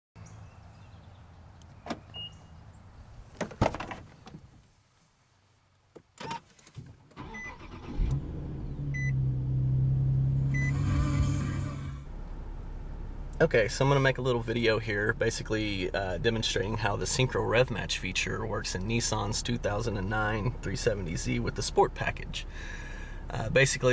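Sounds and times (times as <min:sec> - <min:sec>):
car door opening and shutting: 0:01.8 - 0:02.4, 0:03.3 - 0:04.5, 0:06.0 - 0:08.2
car engine idling: 0:07.2 - 0:23.9
short electronic beeps: 0:08.9 - 0:09.2, 0:10.5 - 0:10.8.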